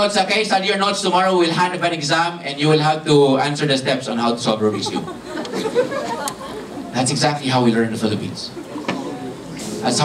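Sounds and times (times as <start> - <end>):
audience murmuring: 4.3 - 10.0
audience laughing: 4.6 - 7.2, 8.4 - 9.8.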